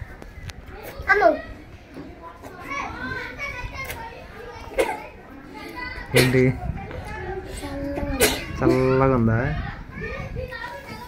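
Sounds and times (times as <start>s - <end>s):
children chattering and giggling: 0.0s - 11.0s.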